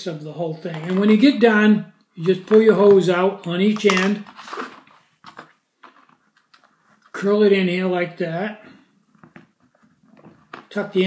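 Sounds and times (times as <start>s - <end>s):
faint handling noises: 0.6s - 1.4s, 2.2s - 7.3s.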